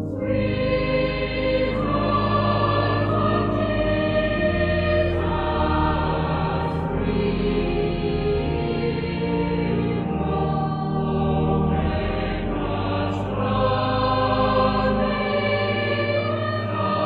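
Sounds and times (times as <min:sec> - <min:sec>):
choir singing held notes: 0:00.0 - 0:17.0.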